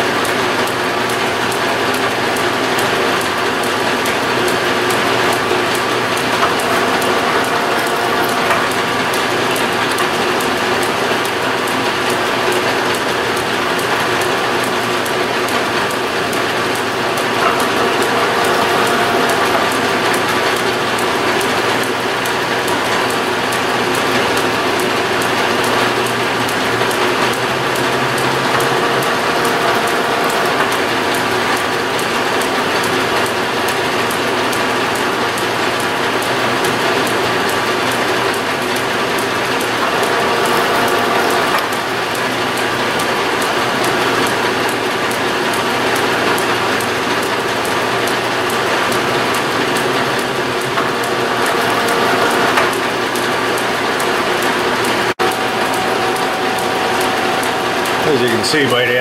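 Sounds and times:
metal lathe gear clatter: 0.3s - 59.0s
lathe motor hum: 1.0s - 34.6s, 35.4s - 59.0s.

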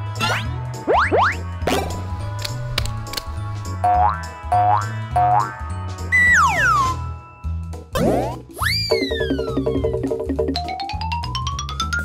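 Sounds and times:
playful background music: 0.0s - 12.0s
cartoon falling glide: 8.0s - 10.1s.

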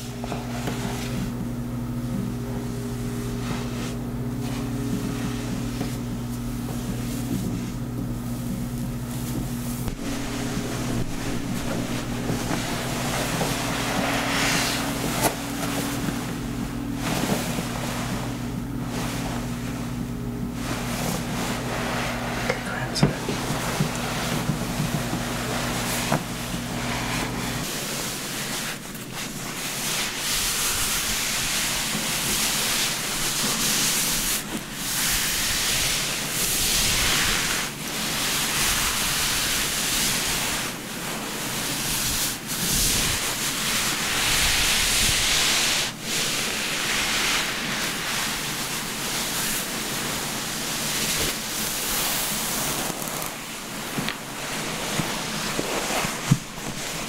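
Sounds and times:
steady low hum: 0.0s - 57.0s
towel rubbing wet hair: 0.0s - 57.0s.

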